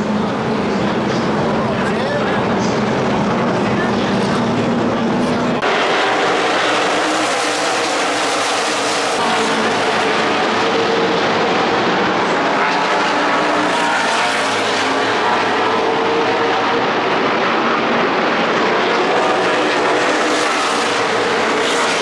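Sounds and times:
stock car engines droning: 0.0 - 22.0.

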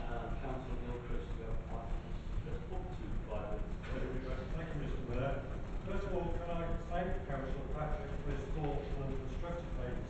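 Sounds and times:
person talking in reverberant room: 0.0 - 10.0.

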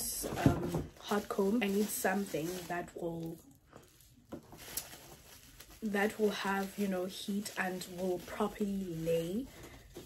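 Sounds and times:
person speaking: 0.0 - 3.4, 5.8 - 9.5
rustling of bubble wrap: 0.0 - 10.0.

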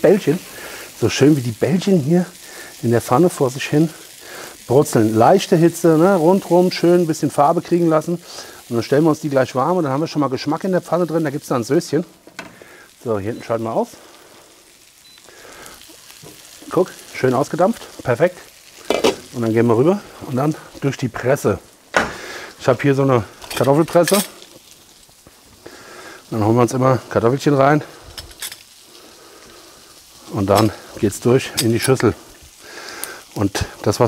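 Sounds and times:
meatballs sizzling in a frying pan: 0.0 - 34.0.

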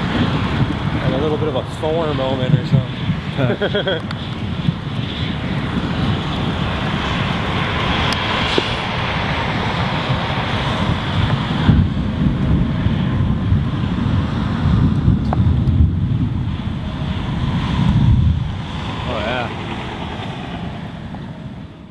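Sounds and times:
storm wind buffeting microphone: 0.0 - 21.9.

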